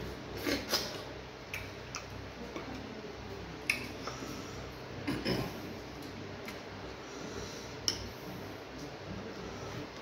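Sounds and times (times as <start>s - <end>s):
steady low hum: 0.0s - 10.0s
chewing and lip smacks: 0.6s - 2.6s.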